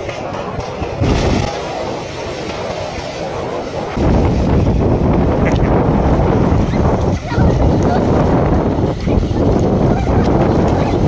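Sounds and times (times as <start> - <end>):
people splashing in water: 0.0 - 11.0
wind buffeting microphone: 0.0 - 11.0.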